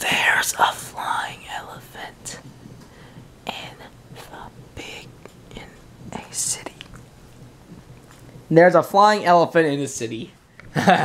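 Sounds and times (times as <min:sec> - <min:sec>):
man whispering: 0:00.0 - 0:02.5, 0:03.4 - 0:07.0.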